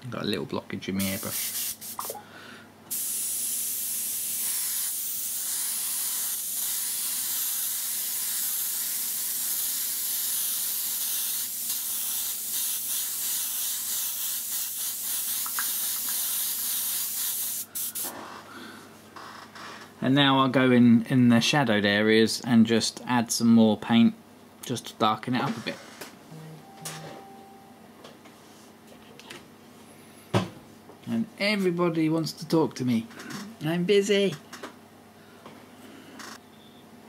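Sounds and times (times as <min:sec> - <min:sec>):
airbrush hissing: 0:01.0 - 0:02.1, 0:02.9 - 0:18.1.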